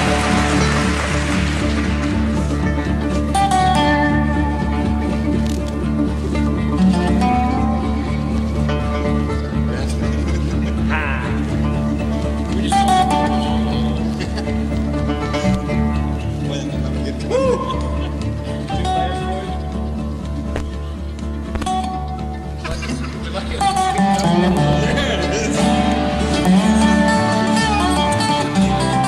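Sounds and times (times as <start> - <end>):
acoustic bluegrass band playing: 0.0 - 29.0.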